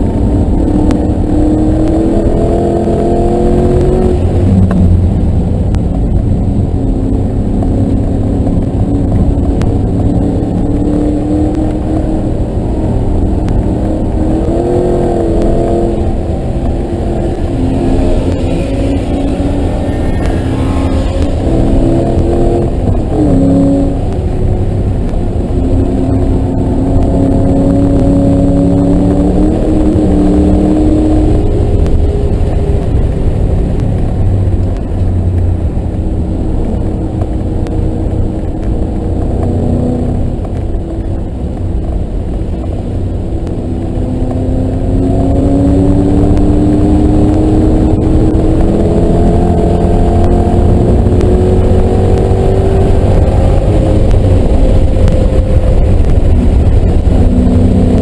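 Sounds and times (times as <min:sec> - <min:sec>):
car engine revving: 0:00.0 - 0:58.0.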